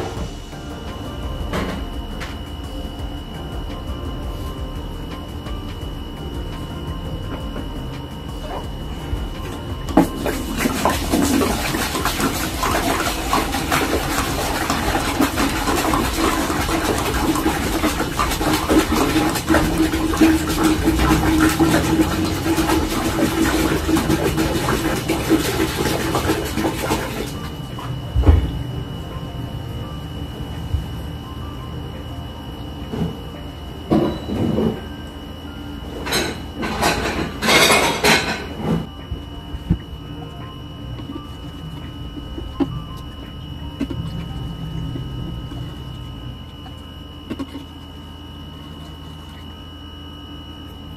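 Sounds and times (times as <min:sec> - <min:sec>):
water pouring into aquarium: 0:09.8 - 0:28.1.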